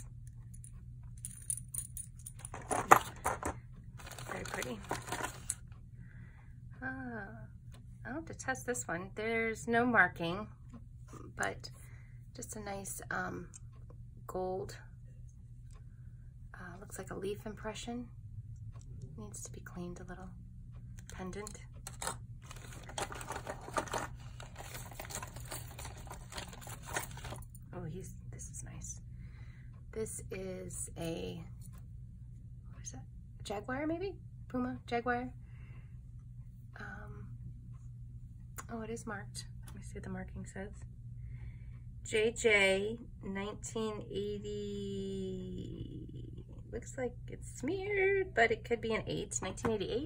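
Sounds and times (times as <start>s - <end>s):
metal jewelry clinking and jangling: 0.0s - 5.6s, 21.8s - 27.6s
metal jewelry clinking: 1.2s - 3.5s
plastic bags rustling: 2.6s - 5.6s, 21.9s - 27.5s.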